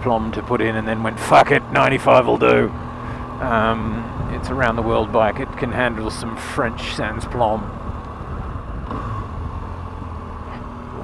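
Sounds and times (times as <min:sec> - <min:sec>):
motorcycle engine rumble: 0:00.0 - 0:11.0
wind and road noise: 0:00.0 - 0:11.0.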